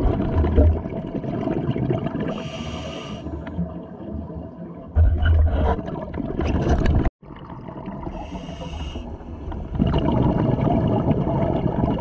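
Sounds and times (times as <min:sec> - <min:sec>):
regulator inhalation hiss: 0:02.4 - 0:03.3, 0:08.2 - 0:09.1.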